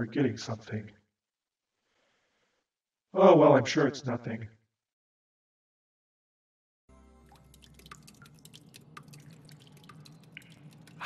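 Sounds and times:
water dripping: 6.9 - 11.0.

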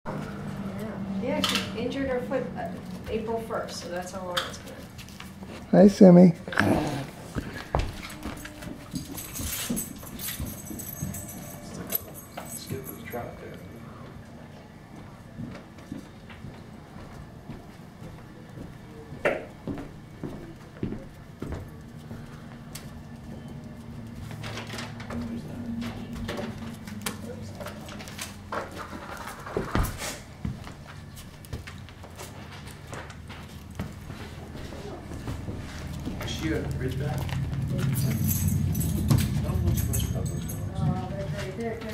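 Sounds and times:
steady low hum: 0.1 - 41.9.

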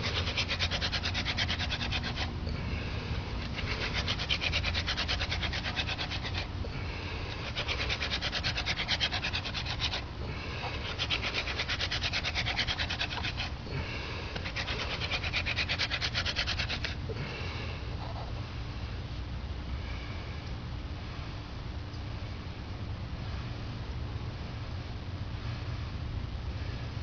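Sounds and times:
wooden spindle rasping on board: 0.0 - 2.4, 3.1 - 6.5, 7.2 - 17.0.

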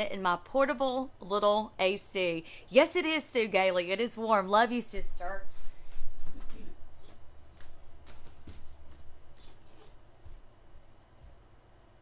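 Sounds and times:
soft footsteps: 5.5 - 12.0.

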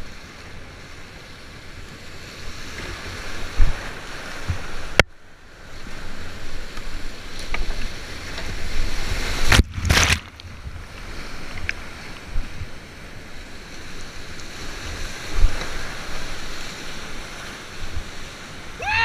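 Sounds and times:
wind on microphone: 0.0 - 5.1, 5.7 - 19.0
water crashing over boat: 7.7 - 10.7
whitewater rushing: 15.1 - 19.0.

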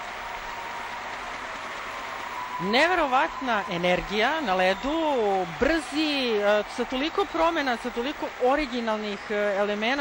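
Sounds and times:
arena crowd applauding: 0.0 - 10.0.

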